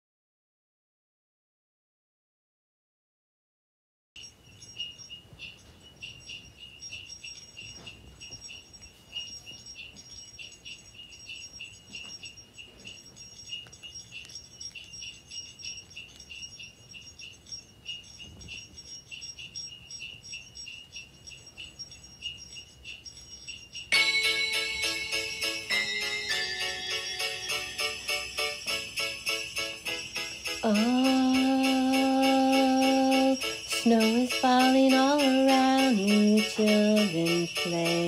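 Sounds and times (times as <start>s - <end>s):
crickets chirping: 4.2s - 38.0s.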